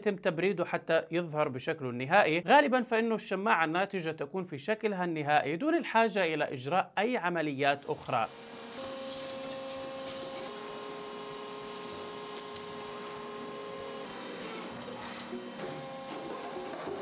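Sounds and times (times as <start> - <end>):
machine whirring and humming: 8.0 - 17.0.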